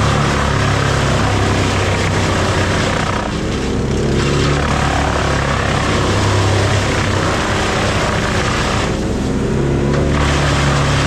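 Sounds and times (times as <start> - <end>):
wood chipper engine drone: 0.0 - 11.0
wood grinding and shredding: 0.0 - 11.0.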